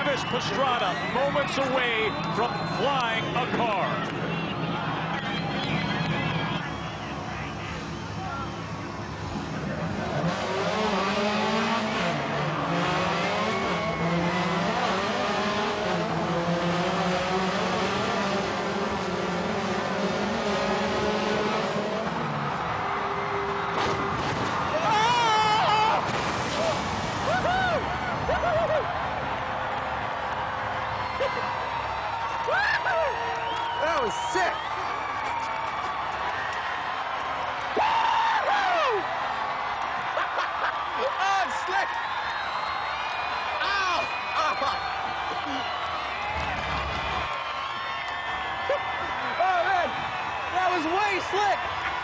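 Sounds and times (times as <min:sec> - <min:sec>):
rally car engine revving: 0:09.4 - 0:22.4.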